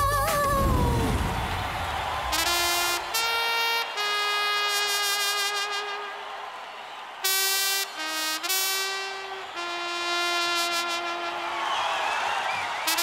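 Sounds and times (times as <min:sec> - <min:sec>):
trumpet playing slow solo: 0:02.3 - 0:06.3, 0:07.2 - 0:11.6.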